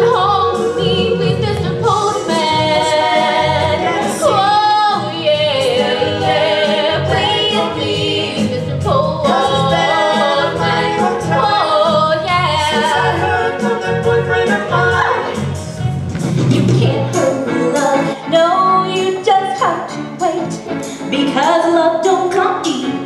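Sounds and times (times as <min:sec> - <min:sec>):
voices singing in harmony: 0:00.0 - 0:15.8, 0:16.5 - 0:19.2
pop backing music with beat: 0:00.0 - 0:23.0.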